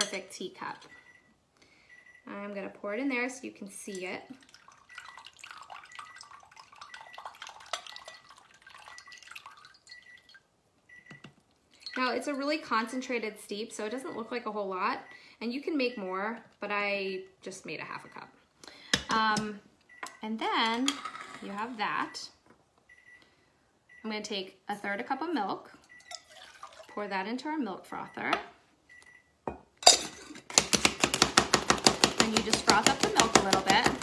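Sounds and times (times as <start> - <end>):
tea dripping into a glass cup: 4.4 - 10.4.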